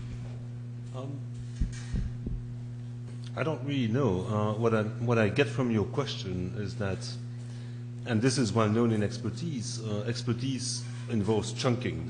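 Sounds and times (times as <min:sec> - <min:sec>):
steady electrical hum: 0:00.0 - 0:12.0
soft low thumps: 0:01.4 - 0:02.8.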